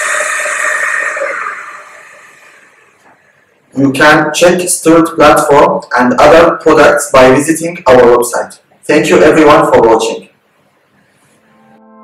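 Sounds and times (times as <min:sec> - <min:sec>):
electric actuators whining: 0:00.0 - 0:03.5.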